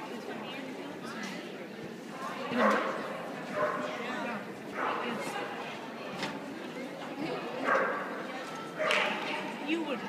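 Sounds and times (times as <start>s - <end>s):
people chattering: 0.0s - 10.0s
dog barking: 3.6s - 3.9s, 7.6s - 8.1s.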